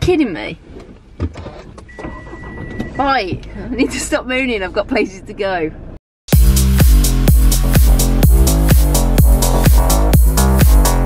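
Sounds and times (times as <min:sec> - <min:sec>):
car dashboard beep: 0:01.9 - 0:03.6.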